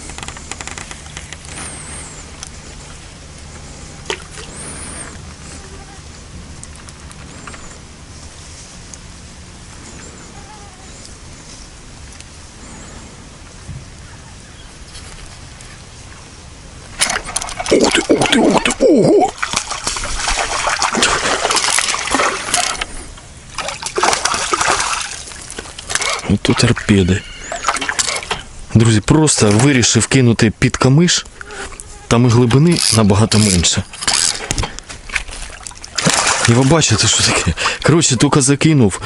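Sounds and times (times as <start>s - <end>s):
low mechanical hum: 0.0s - 39.0s
fish splashing at water surface: 17.0s - 26.3s, 35.1s - 37.8s.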